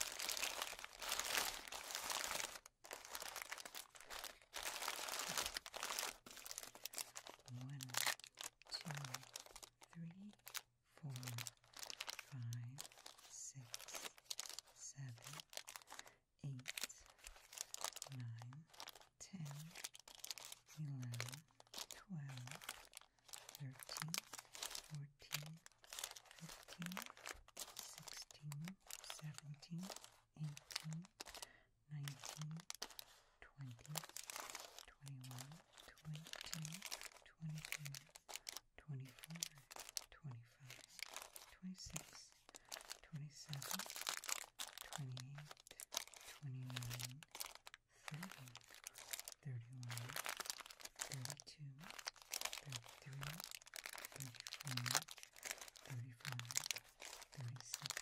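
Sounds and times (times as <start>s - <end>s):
candy wrappers crinkling: 0.0s - 58.0s
soft voice saying short words: 7.4s - 8.1s, 8.7s - 9.3s, 9.9s - 11.5s, 12.2s - 14.1s, 14.8s - 15.4s, 16.4s - 17.0s, 18.0s - 19.8s, 20.6s - 21.4s, 22.0s - 22.6s, 23.6s - 25.6s, 26.3s - 27.1s, 27.8s - 31.2s, 31.9s - 32.7s, 33.4s - 34.2s, 34.8s - 42.4s, 43.0s - 43.9s, 44.8s - 47.2s, 48.0s - 48.6s, 49.4s - 50.2s, 51.0s - 51.9s, 52.6s - 53.4s, 54.0s - 55.0s, 55.8s - 56.6s, 57.3s - 58.0s.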